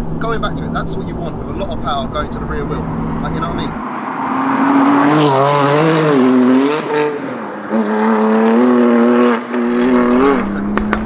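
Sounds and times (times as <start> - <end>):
car engine accelerating hard: 0.0 - 11.0.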